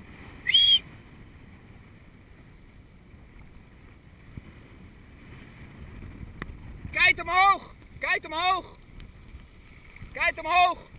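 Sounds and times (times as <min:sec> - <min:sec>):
choppy water against camera: 0:00.0 - 0:10.9
wind rumble: 0:00.0 - 0:10.9.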